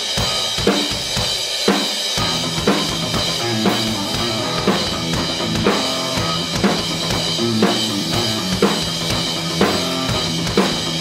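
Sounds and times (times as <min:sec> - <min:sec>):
heavy metal drum beat: 0:00.0 - 0:11.0.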